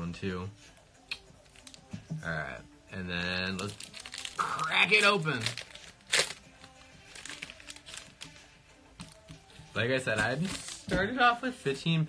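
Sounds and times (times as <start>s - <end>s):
foil wrapper crinkling: 3.5s - 9.2s.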